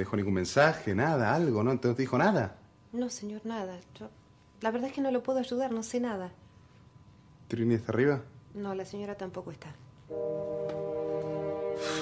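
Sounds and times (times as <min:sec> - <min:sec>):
dramatic sustained music chord: 0:10.1 - 0:12.0
burst of hiss: 0:11.7 - 0:12.0.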